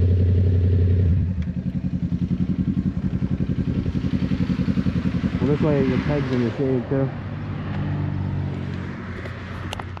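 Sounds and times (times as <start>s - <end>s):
motorcycle engine running steadily: 0.0s - 7.3s.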